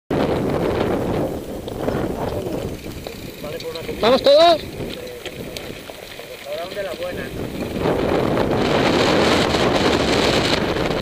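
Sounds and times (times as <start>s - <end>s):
bike tyres rumbling over gravel: 0.1s - 11.0s
wind buffeting microphone: 0.1s - 11.0s
faint voices: 1.8s - 7.7s.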